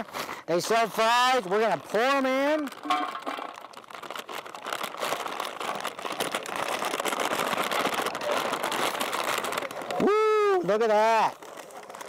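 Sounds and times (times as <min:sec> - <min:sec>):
paper bag crinkling: 0:00.0 - 0:12.0
fries clattering into metal basket: 0:02.8 - 0:03.6.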